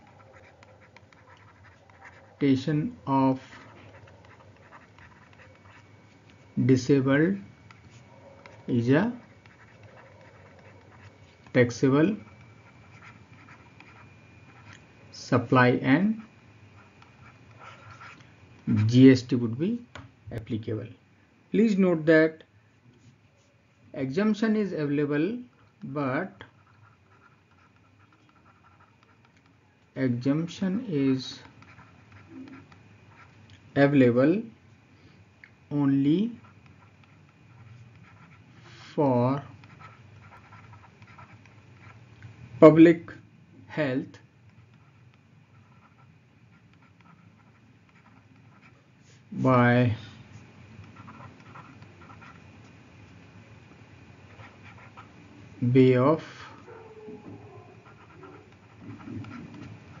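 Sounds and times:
stylus scratching on tablet: 0.0 - 19.2, 24.1 - 34.4, 35.8 - 43.1, 43.8 - 60.0
low background noise: 0.0 - 60.0.

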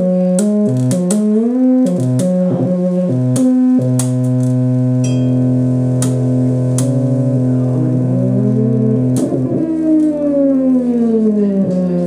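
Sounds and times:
string synthesizer notes: 0.0 - 12.0.

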